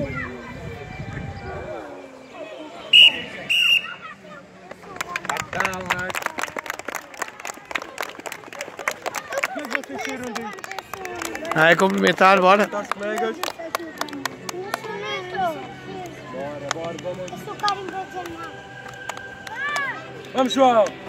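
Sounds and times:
children chattering and shouting: 0.0 - 21.0
sports whistle blasts: 2.9 - 4.0
children clapping: 4.7 - 15.2, 15.9 - 21.0.

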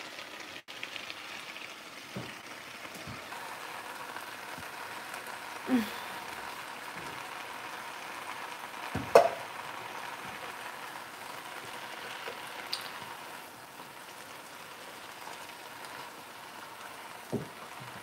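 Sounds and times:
greens sizzling in frying pan: 0.0 - 18.0.

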